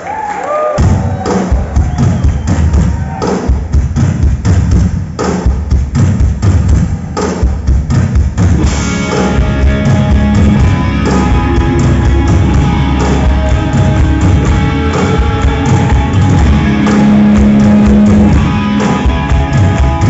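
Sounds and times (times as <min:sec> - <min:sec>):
hard rock band playing live: 0:06.6 - 0:20.0.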